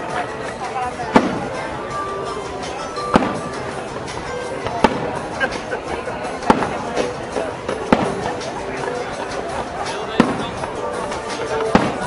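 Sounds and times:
faint firework pops: 1.1 - 1.6, 3.1 - 3.6, 4.7 - 5.2, 6.5 - 8.5, 10.2 - 10.6, 11.6 - 12.0
firework shells bursting: 1.1 - 1.6, 3.0 - 3.7, 6.4 - 8.5.

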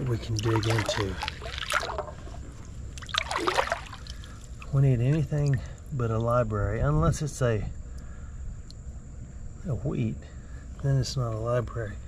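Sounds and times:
rocks being dug from stream bed: 0.0 - 5.2
creek water trickling: 0.0 - 6.6
short water splash: 0.3 - 2.4, 3.0 - 4.8.

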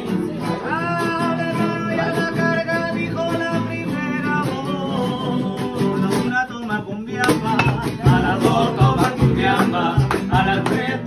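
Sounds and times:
acoustic guitars strumming: 0.0 - 11.0
man singing: 0.0 - 11.0.

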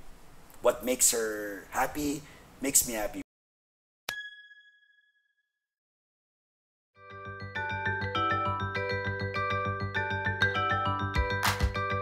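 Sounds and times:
bright bell-like ding: 4.1 - 5.5.

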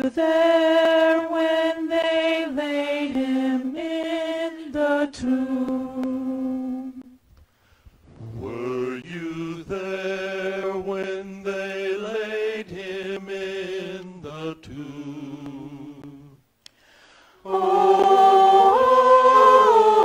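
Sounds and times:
vocal ensemble singing a cappella: 0.0 - 7.2, 8.1 - 20.0.

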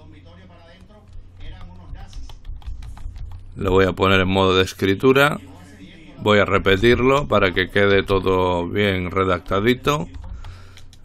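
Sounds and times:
keyboard typing: 0.4 - 4.3, 6.7 - 11.0.

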